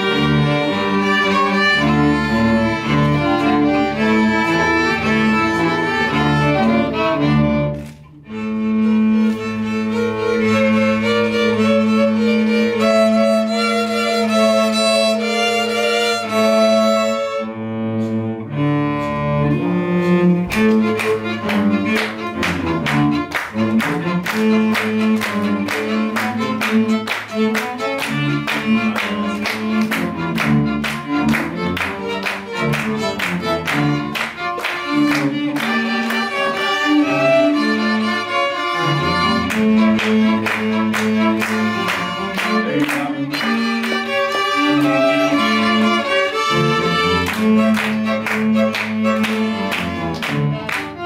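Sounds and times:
hand claps keeping time: 0.0s - 6.7s, 8.9s - 17.1s, 18.9s - 51.0s
string quintet playing: 0.0s - 51.0s.

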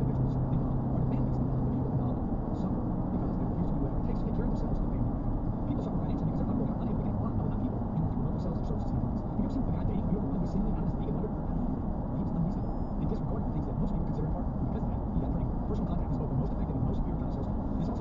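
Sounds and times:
car road and tyre noise: 0.0s - 18.0s
low hum: 0.0s - 18.0s.

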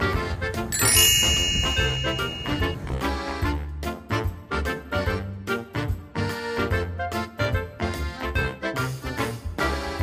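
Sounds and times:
background music: 0.0s - 10.0s
bright chime: 0.8s - 2.8s.

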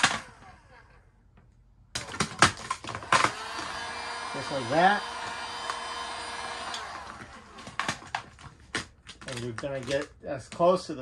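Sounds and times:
heat gun blowing: 3.0s - 8.0s
plastic film crackling: 7.2s - 10.7s.

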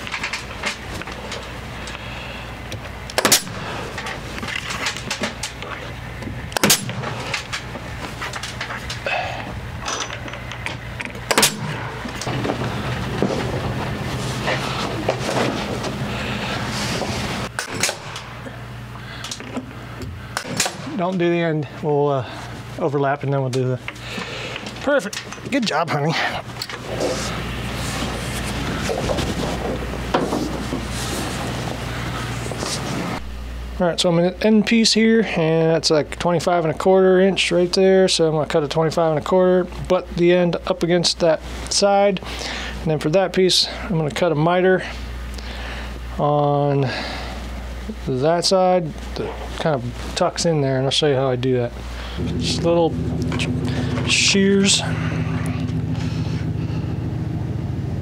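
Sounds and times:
low mechanical hum: 0.0s - 58.0s
nail gun shots: 3.1s - 3.8s, 6.6s - 7.4s, 11.3s - 11.9s, 17.6s - 18.4s, 20.4s - 21.0s.

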